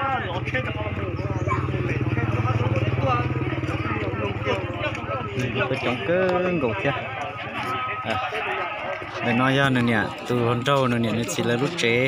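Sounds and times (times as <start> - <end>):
motorcycle engine idling: 0.0 - 9.2
voices talking: 0.0 - 12.0.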